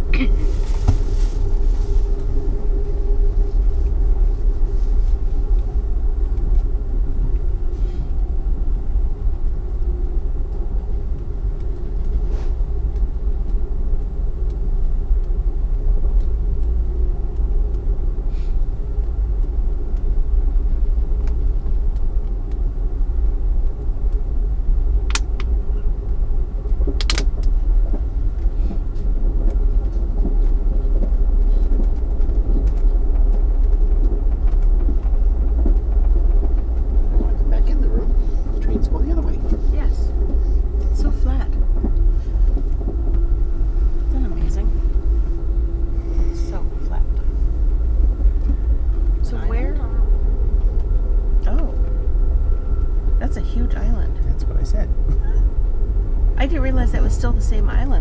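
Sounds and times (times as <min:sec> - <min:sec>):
train car rumbling on rails: 0:00.0 - 0:58.0
sharp clicks: 0:26.9 - 0:27.5.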